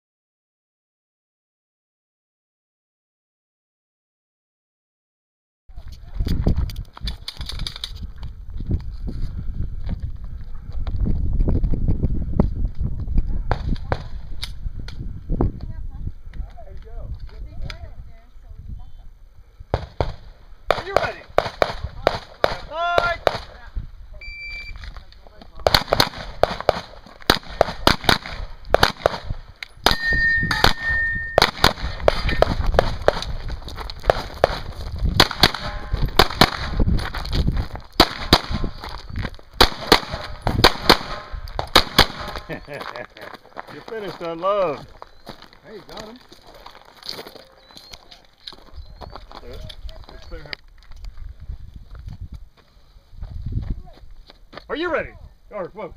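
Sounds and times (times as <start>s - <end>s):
rapid handgun shots: 19.8s - 23.5s, 25.6s - 29.4s, 31.4s - 33.2s, 35.2s - 36.8s, 38.0s - 38.7s, 39.6s - 42.5s
short beep: 24.2s - 24.8s, 29.9s - 31.4s.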